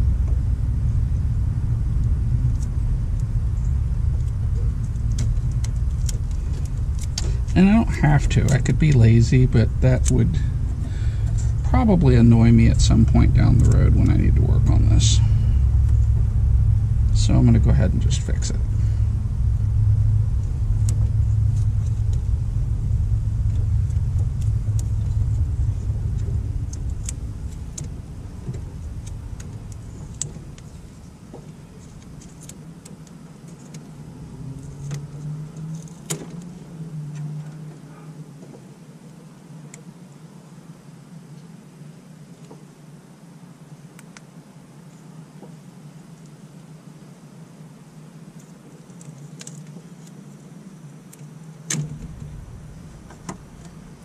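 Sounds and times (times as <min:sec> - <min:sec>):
low vehicle engine rumble: 0:00.0 - 0:54.0
wires rustling and clicking: 0:01.9 - 0:16.2, 0:20.2 - 0:39.8, 0:48.3 - 0:54.0.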